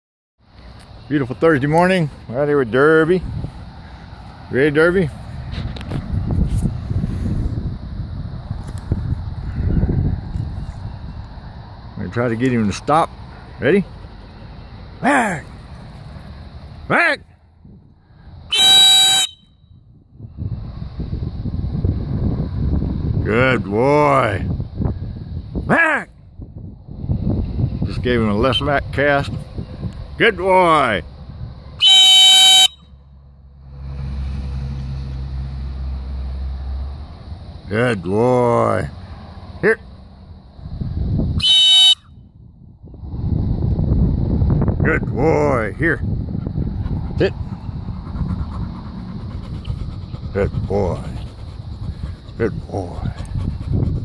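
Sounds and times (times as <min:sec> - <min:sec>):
low rumbling noise: 0:00.9 - 0:18.5, 0:42.2 - 0:54.0
dog whistle blast: 0:18.5 - 0:19.6, 0:31.8 - 0:32.9, 0:41.4 - 0:42.1.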